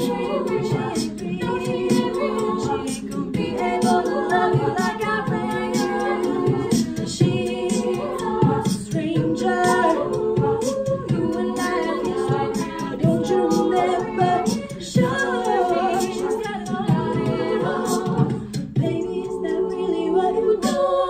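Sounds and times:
beatboxed vocal percussion: 0.0s - 21.0s
women singing a cappella: 0.0s - 21.0s.

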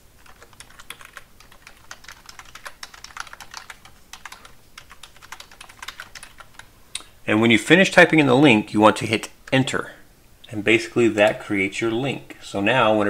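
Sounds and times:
typing on computer keyboard: 0.2s - 6.7s.

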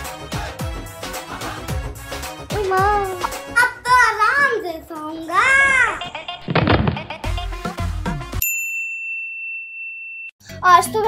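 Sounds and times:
background music: 0.0s - 8.4s, 10.4s - 11.0s
bright bell-like ding: 8.4s - 10.4s.

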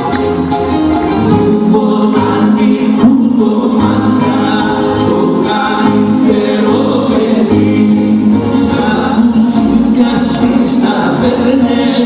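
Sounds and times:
bouzoukis and plucked strings playing: 0.0s - 12.0s
person singing: 1.2s - 12.0s.

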